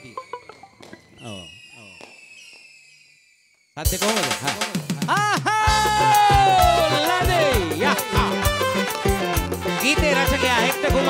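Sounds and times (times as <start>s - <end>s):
man's voice through pa: 4.8s - 8.7s.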